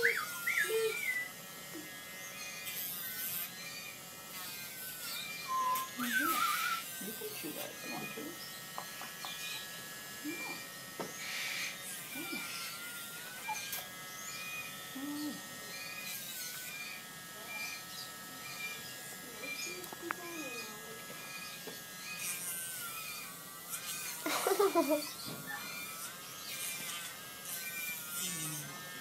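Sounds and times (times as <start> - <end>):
rotary grinder whining: 0.0 - 29.0.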